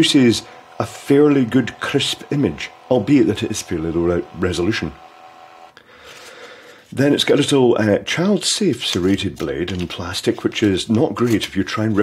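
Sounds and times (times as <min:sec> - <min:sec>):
printer cutter click: 0:00.0 - 0:05.7
paper tearing rip: 0:08.8 - 0:12.0.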